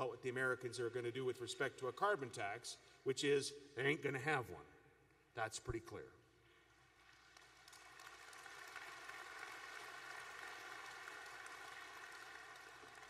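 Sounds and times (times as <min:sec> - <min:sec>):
audience applauding: 0:07.0 - 0:13.0.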